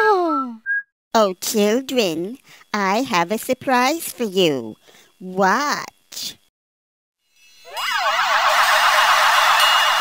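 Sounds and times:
shimmering magic spell effect: 7.3s - 10.0s.

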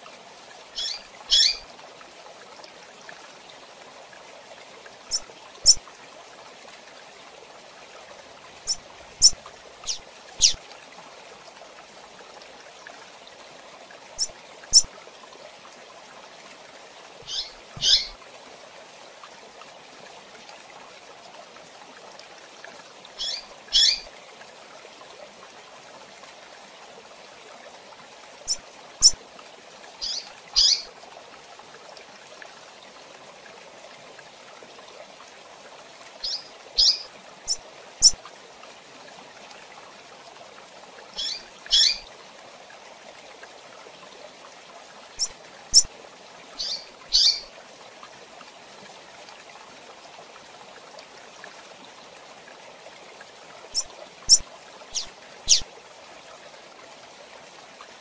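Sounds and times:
bird chirping: 0.8s - 1.6s, 5.1s - 5.8s, 8.7s - 10.6s, 14.2s - 14.9s, 17.2s - 18.2s, 23.2s - 24.0s, 28.5s - 29.2s, 30.0s - 30.9s, 36.2s - 38.2s, 41.2s - 42.0s, 45.2s - 45.9s, 46.6s - 47.5s, 53.7s - 55.6s.

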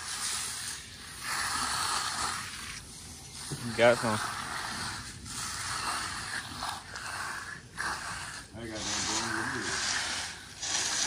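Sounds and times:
squeegee scraping wet concrete: 0.0s - 11.0s.

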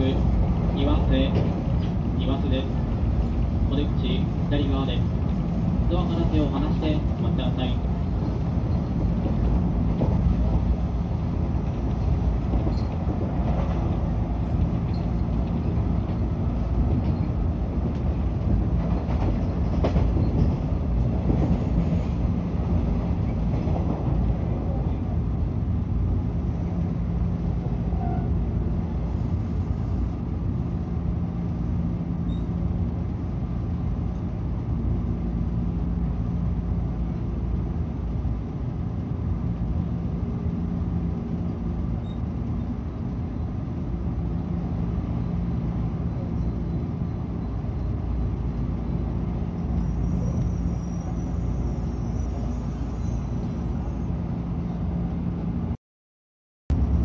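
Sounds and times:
train wheels rumbling on rail: 0.0s - 55.8s.

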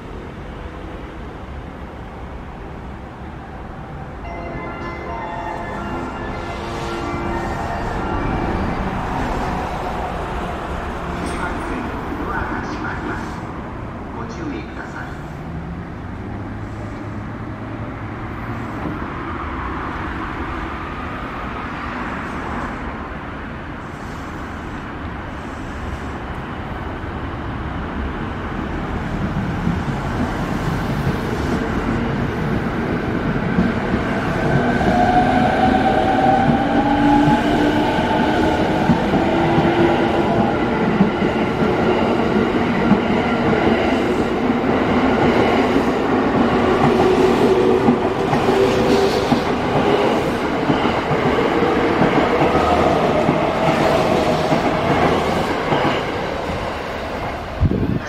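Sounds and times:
wheels clacking on rails: 29.1s - 58.0s.

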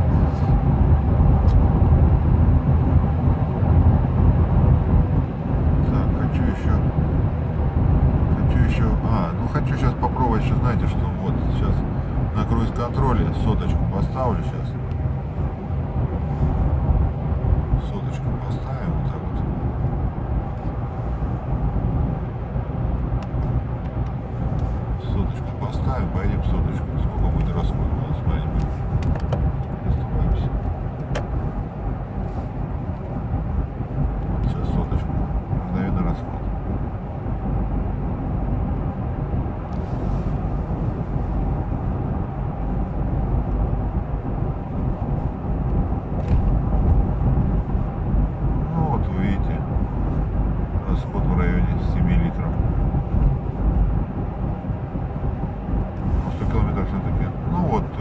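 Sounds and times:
engine rumble: 0.0s - 58.0s
wind noise: 0.0s - 58.0s.

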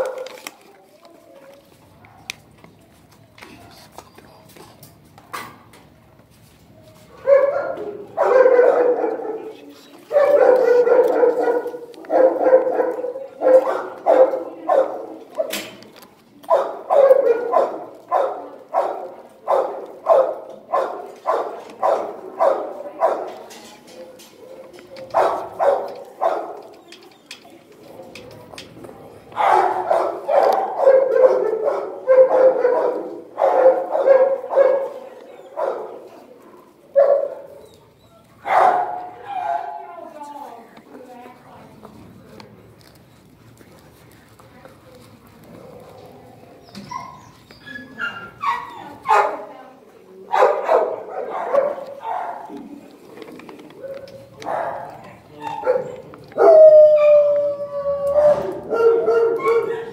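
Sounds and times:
dog barking: 7.2s - 15.6s, 16.5s - 23.4s, 24.5s - 26.6s, 29.4s - 35.0s, 35.6s - 36.0s, 37.0s - 37.5s, 38.4s - 39.8s, 48.0s - 49.5s, 50.3s - 52.5s, 53.9s - 55.0s, 55.6s - 56.6s, 58.2s - 59.9s.

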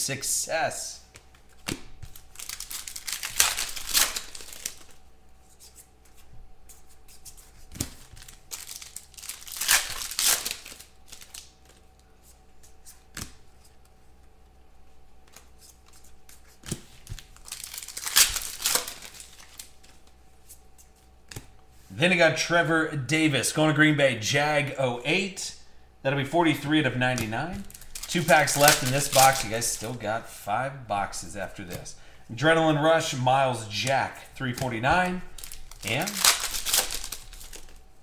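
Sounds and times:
foil wrappers tearing and crinkling: 2.0s - 5.0s, 7.7s - 11.8s, 16.7s - 19.8s, 27.2s - 30.0s, 34.4s - 37.8s.

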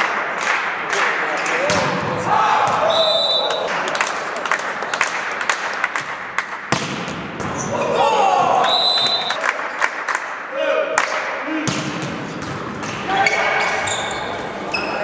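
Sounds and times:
players shouting: 1.4s - 3.9s, 7.6s - 9.4s
referee whistle blasts: 2.8s - 3.6s, 8.6s - 9.4s
hands smacking volleyball: 5.8s - 7.6s.

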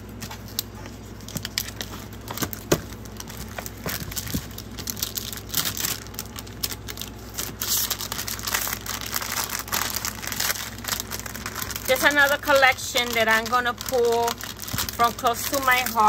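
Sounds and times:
plastic packaging and paper crinkling: 0.0s - 16.0s
small clicks and crackles: 0.2s - 16.0s.

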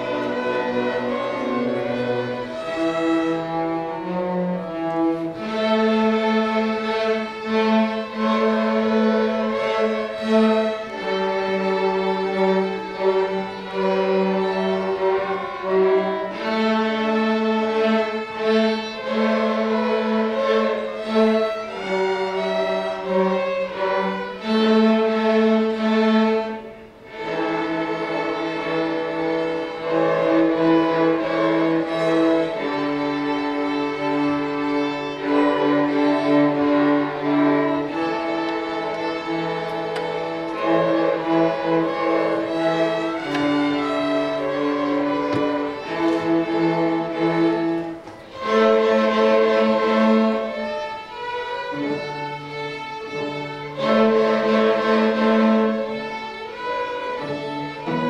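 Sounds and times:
string orchestra playing: 0.0s - 58.0s.

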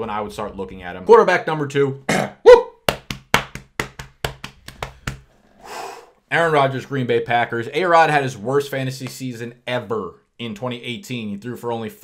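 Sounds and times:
hands drumming on a desk: 2.9s - 5.3s.

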